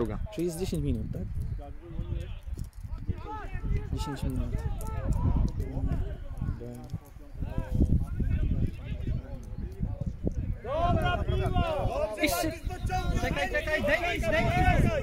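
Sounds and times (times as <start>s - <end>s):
footballers shouting: 1.8s - 6.4s, 7.4s - 15.0s.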